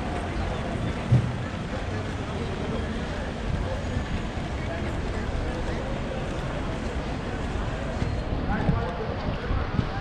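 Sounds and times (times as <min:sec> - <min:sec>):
passers-by talking: 0:00.0 - 0:10.0
steady outdoor background: 0:00.0 - 0:10.0
low thump: 0:01.1 - 0:01.4.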